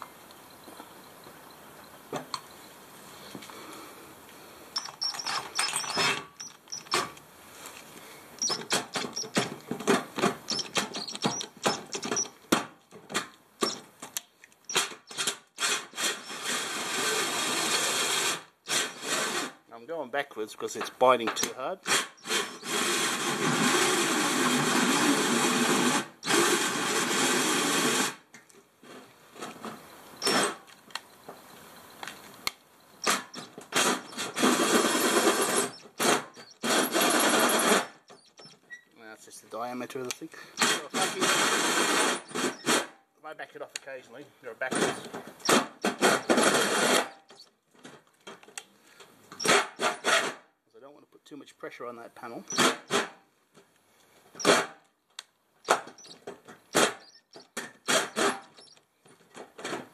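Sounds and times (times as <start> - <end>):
drill hole saw cutting metal: 4.8 - 7.1, 8.4 - 9.4, 10.5 - 12.3, 14.7 - 19.6, 21.4 - 28.2, 30.2 - 30.6, 33.0 - 38.5, 40.6 - 42.9, 44.8 - 47.4, 52.4 - 53.1, 55.7 - 58.8.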